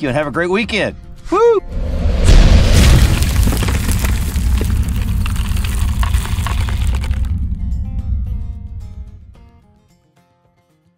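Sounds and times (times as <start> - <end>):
deep rumble: 1.7 - 9.6
crackling and breaking: 2.6 - 7.7.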